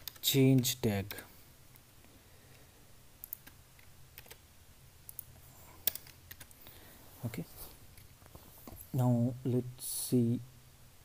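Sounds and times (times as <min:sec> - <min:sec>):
computer keyboard keystrokes: 0:00.0 - 0:01.2, 0:03.2 - 0:04.4, 0:05.1 - 0:06.5.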